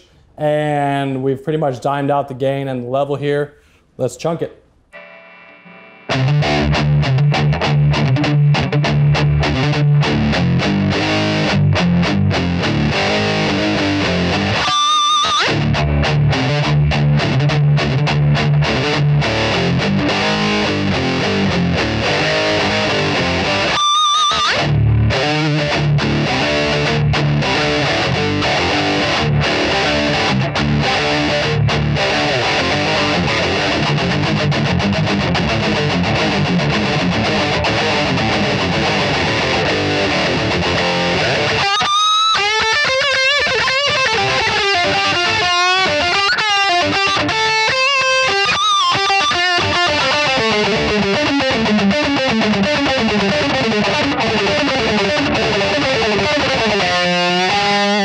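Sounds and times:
overdriven electric guitar riffing: 5.0 - 58.0.

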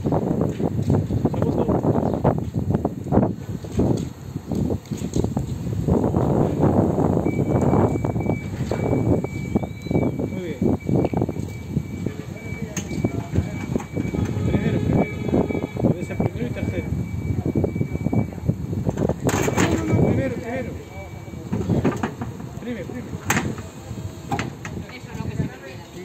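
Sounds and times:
voices: 6.6 - 26.0.

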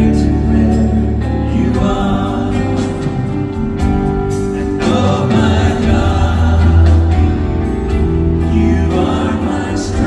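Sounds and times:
choir singing with band: 0.0 - 10.0.

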